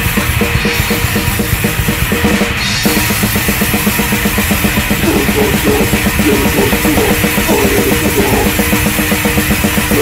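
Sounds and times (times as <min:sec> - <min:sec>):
fast drum-kit beat: 0:00.0 - 0:10.0
hardcore punk band playing: 0:00.0 - 0:10.0.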